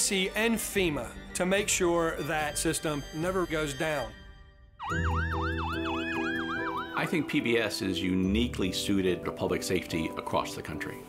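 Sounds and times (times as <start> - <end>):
fire engine siren yelping: 4.8 - 7.2.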